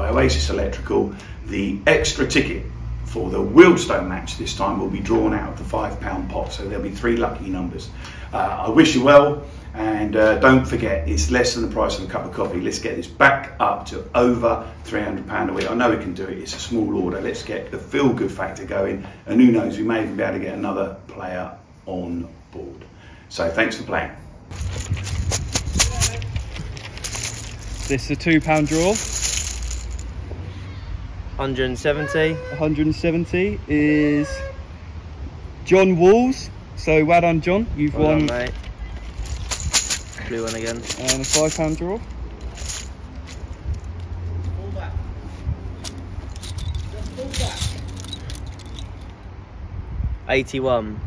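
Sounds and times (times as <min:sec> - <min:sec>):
bag crackling and clicking: 0:24.5 - 0:30.1, 0:39.0 - 0:44.0, 0:45.8 - 0:49.1.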